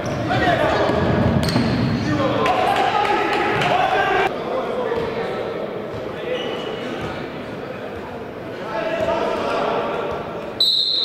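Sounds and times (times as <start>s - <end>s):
referee's whistle blast: 10.6s - 11.0s.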